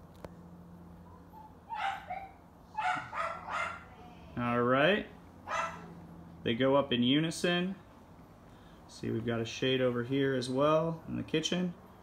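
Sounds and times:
faint steady hum: 0.0s - 12.0s
dog barking: 1.1s - 4.0s, 5.4s - 6.0s.

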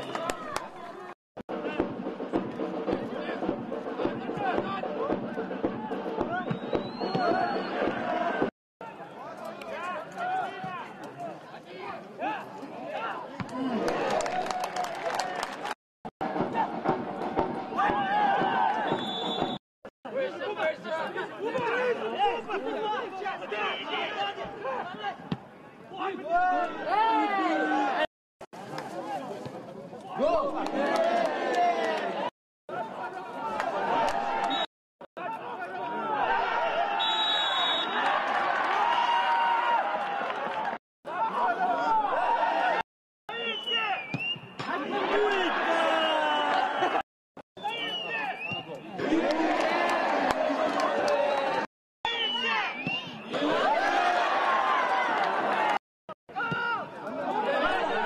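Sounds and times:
footballers shouting: 4.2s - 15.4s, 17.7s - 19.0s, 20.3s - 25.3s, 25.9s - 28.1s, 30.1s - 47.0s, 47.6s - 58.0s
crowd voices chattering: 47.6s - 58.0s.

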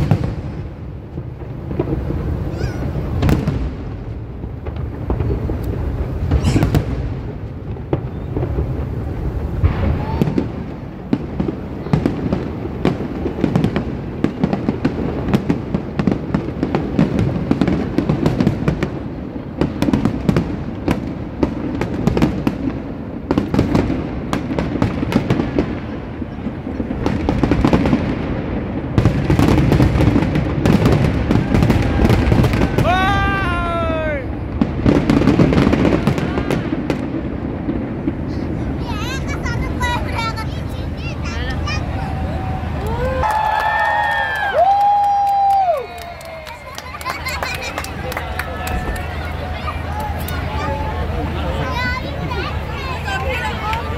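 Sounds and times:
fireworks bangs and crackles: 0.0s - 53.9s.

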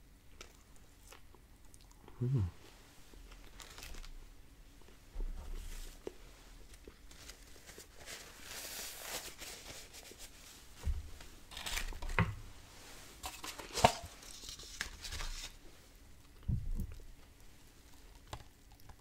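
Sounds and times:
paper wrapper rustling: 3.4s - 4.2s, 6.6s - 10.3s, 11.5s - 12.2s, 13.2s - 15.6s.

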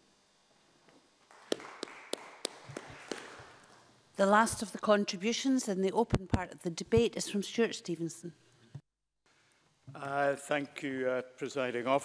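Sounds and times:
faint scattered clapping: 1.2s - 3.7s
sharp claps close to microphone: 1.3s - 3.7s.

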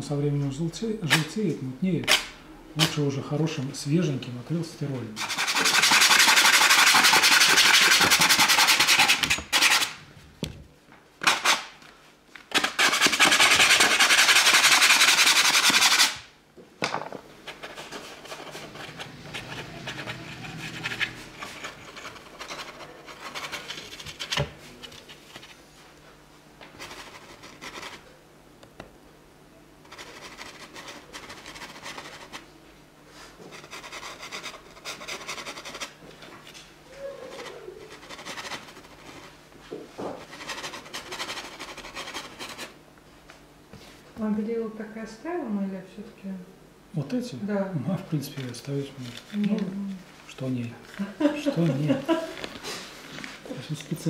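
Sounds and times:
paintbrush scrubbing back and forth: 5.2s - 9.8s, 12.7s - 16.2s, 17.6s - 24.8s, 29.9s - 32.4s, 33.2s - 36.0s, 37.3s - 39.4s, 40.2s - 42.8s.

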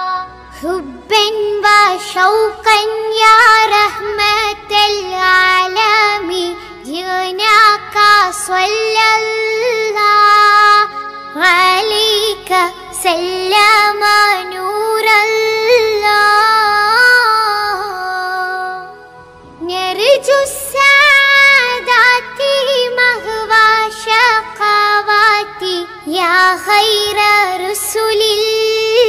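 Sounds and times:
high-pitched voice singing devotional song: 0.0s - 29.0s.

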